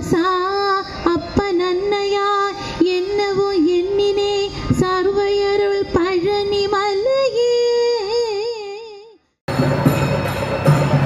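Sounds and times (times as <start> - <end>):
woman singing into microphone: 0.0 - 9.2.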